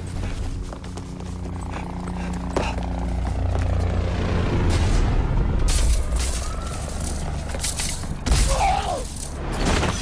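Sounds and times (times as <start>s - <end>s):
vehicle engine rumble: 0.0s - 9.5s.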